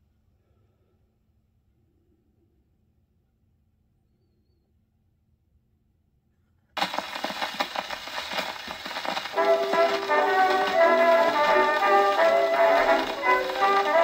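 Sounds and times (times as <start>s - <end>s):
band playing on old record: 6.8s - 14.0s
record surface hiss and crackle: 6.8s - 14.0s.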